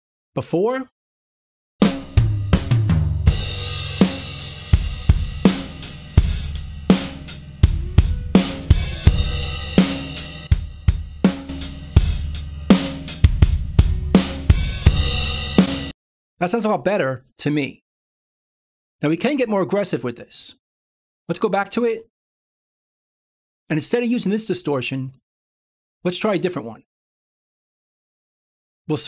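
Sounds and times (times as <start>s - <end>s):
drum kit playing a groove: 1.8s - 15.9s.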